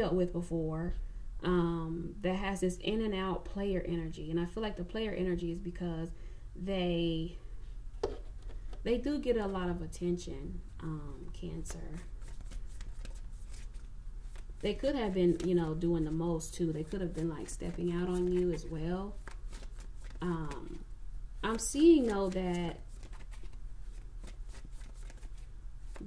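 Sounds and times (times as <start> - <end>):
cards being shuffled: 11.6 - 20.8, 21.5 - 26.0.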